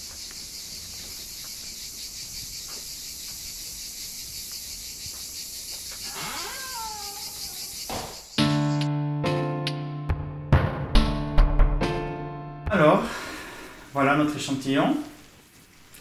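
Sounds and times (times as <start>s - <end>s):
high-pitched insect chorus: 0.0s - 8.8s
animal call sliding down: 6.0s - 8.2s.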